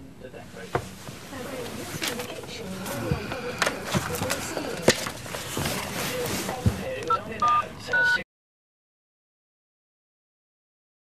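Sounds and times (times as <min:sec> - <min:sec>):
soft wordless murmuring hums: 0:00.0 - 0:08.2.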